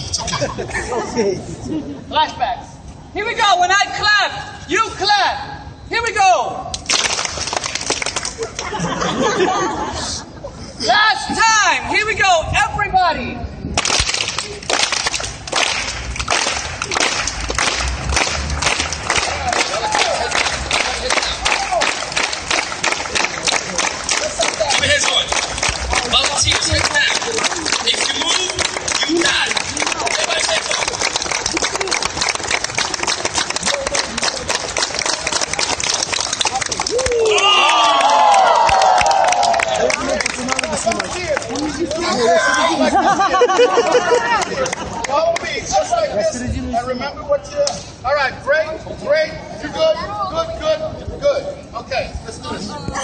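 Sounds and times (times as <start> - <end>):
crowd clapping along: 6.7 - 8.7, 13.8 - 42.2, 43.4 - 45.6
crowd shouting and cheering: 16.7 - 46.1.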